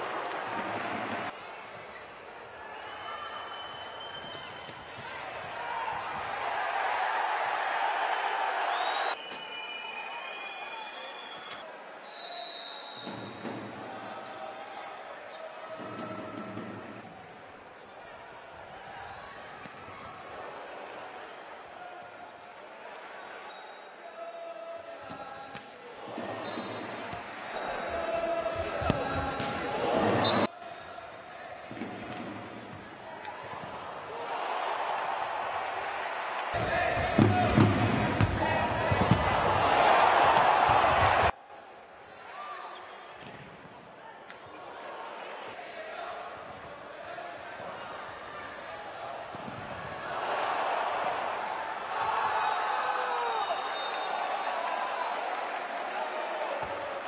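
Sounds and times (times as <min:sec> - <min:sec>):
crowd noise: 0:00.0 - 0:57.0
ball bouncing on court: 0:36.6 - 0:39.4.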